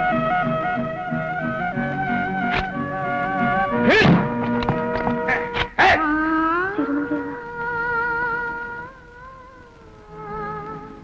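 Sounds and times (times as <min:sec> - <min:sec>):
synthesized film score: 0:00.0 - 0:11.0.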